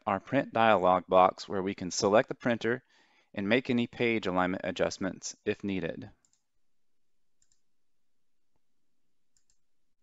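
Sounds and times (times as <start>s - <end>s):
computer mouse clicks: 6.2s - 6.5s, 7.4s - 7.6s, 9.3s - 9.6s.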